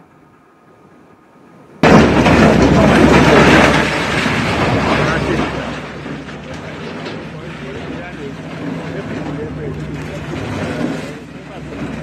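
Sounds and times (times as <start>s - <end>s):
building demolition crash and rumble: 1.8s - 12.0s.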